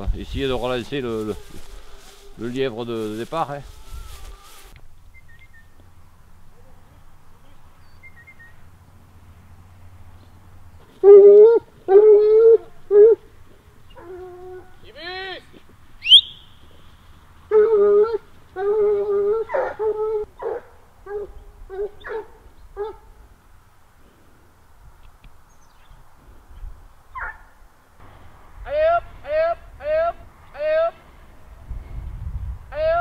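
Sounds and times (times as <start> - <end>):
hounds baying: 10.9 - 14.8, 17.5 - 23.1
dogs yelping: 11.0 - 14.8, 17.5 - 23.0, 27.2 - 27.5.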